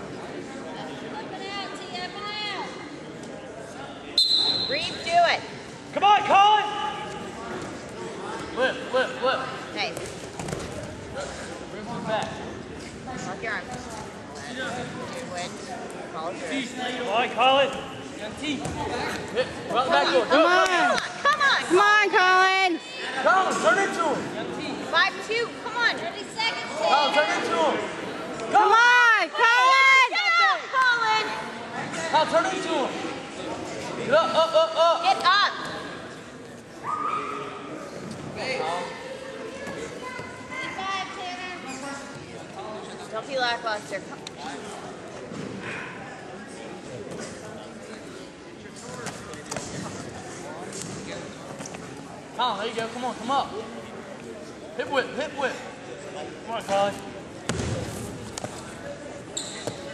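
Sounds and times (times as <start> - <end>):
gym room noise: 0.0 - 59.9
murmur of spectators: 0.0 - 59.9.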